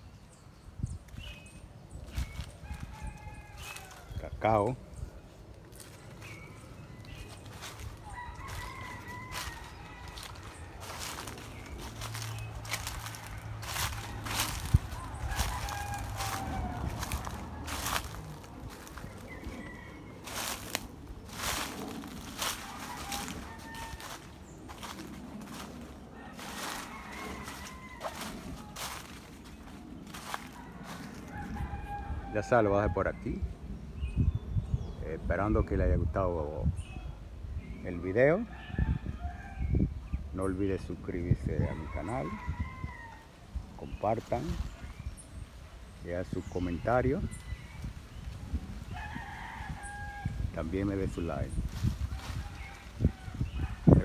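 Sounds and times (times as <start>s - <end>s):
footsteps crunching in dry leaves: 1.1s - 32.3s, 41.6s - 54.0s
rooster crowing faintly: 2.3s - 4.4s, 5.7s - 32.7s, 48.9s - 54.0s.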